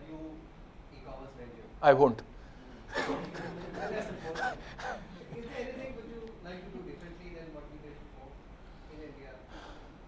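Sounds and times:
person laughing: 0:02.9 - 0:06.1.

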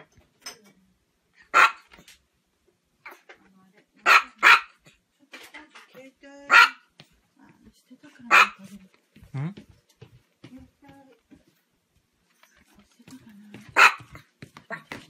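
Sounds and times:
small dog barking: 0:01.5 - 0:02.0, 0:04.0 - 0:04.8, 0:06.5 - 0:06.8, 0:08.3 - 0:08.7, 0:13.7 - 0:14.9.

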